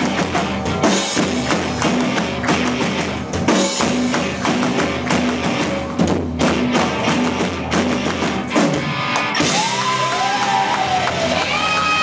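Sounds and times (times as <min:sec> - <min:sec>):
live rock band playing: 0:00.0 - 0:12.0
audience clapping along: 0:09.1 - 0:12.0.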